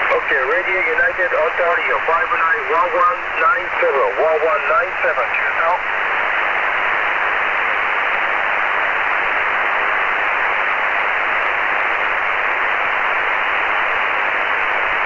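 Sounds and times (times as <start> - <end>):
shortwave radio hiss: 0.0 - 15.0.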